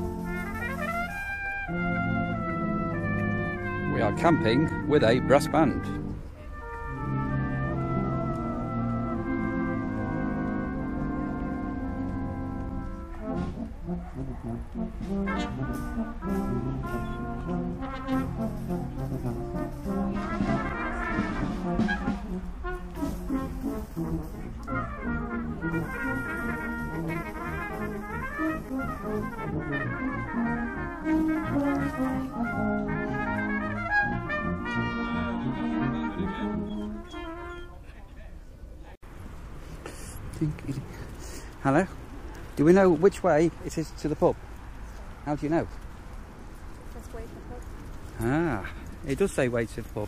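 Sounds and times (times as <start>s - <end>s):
brass band playing: 0.0s - 37.8s, 46.6s - 50.0s.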